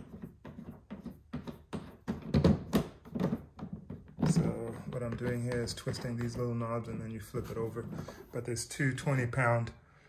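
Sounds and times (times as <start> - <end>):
plastic cover clicks and knocks: 1.4 - 6.4.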